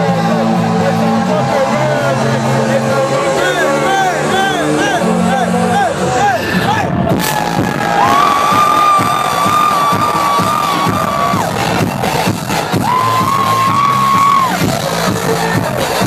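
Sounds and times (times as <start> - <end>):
loud house music: 0.0 - 16.0
crowd cheering and whooping: 7.2 - 14.8.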